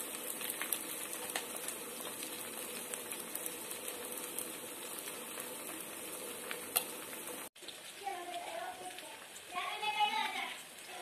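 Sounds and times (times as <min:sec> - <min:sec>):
chicken sizzling in oil: 0:00.0 - 0:11.0
oil popping and crackling: 0:00.0 - 0:11.0.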